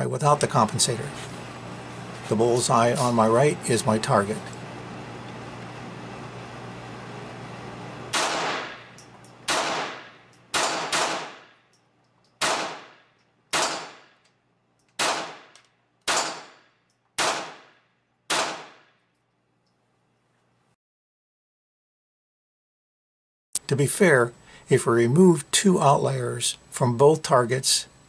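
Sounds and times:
pistol shots echoing indoors: 8.1 - 11.6, 12.4 - 14.2, 15.0 - 19.2.

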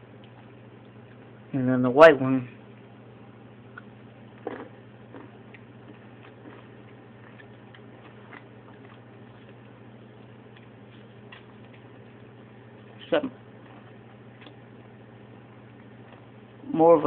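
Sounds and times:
steady low hum: 0.0 - 17.0
person chewing candy crunches: 3.7 - 10.7.

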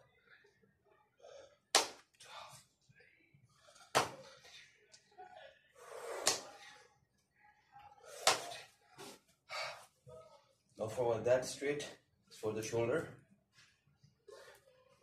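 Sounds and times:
soft breaths: 0.0 - 10.8, 13.2 - 15.0.

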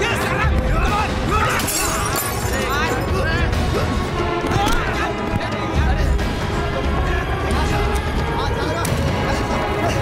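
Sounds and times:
background music with vocals: 0.0 - 10.0.

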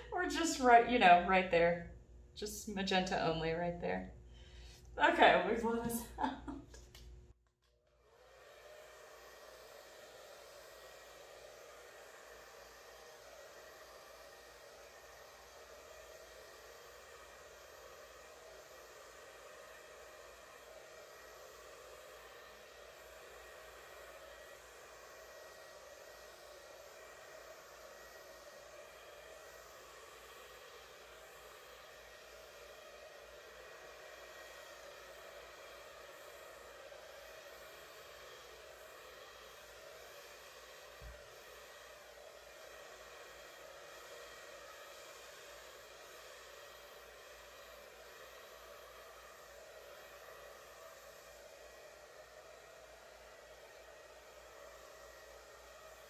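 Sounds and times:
hair dryer running: 0.0 - 56.0.

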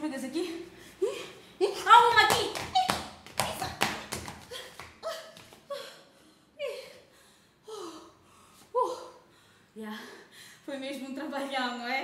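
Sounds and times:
hands slapping clothes: 2.2 - 5.6
woman's wordless cries: 4.4 - 10.3.

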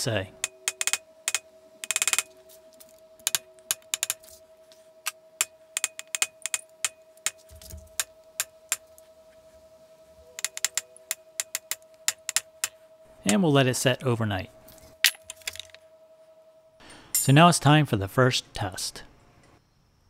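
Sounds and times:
hammer tapping steel punch: 0.4 - 2.3.

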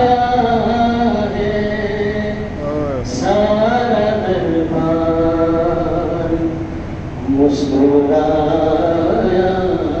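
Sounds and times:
man chanting unaccompanied: 0.0 - 6.6, 7.3 - 10.0.

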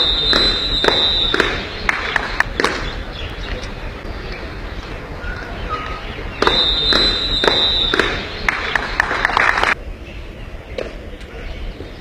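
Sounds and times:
loud noise with high tone: 0.0 - 10.6.

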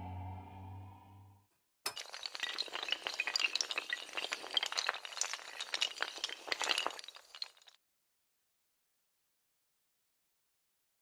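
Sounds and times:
dominoes toppling: 1.9 - 7.8.

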